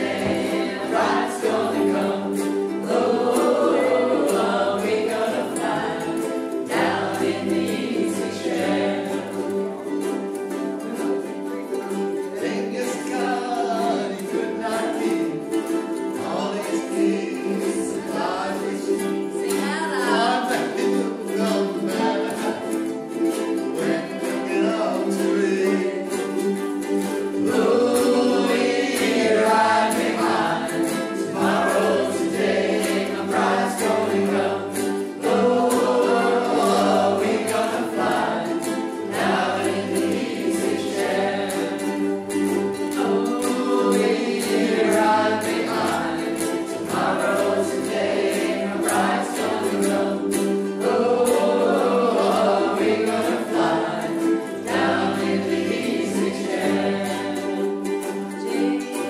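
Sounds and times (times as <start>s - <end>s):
group singing in unison: 0.0s - 59.0s
strummed ukuleles and guitars: 0.0s - 59.0s.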